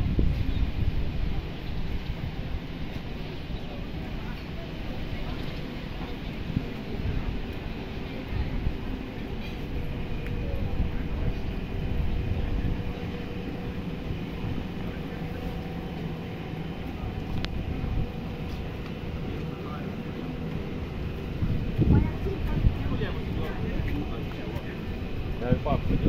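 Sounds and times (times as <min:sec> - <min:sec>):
faint voices: 0:00.0 - 0:26.0
low street rumble: 0:00.0 - 0:26.0.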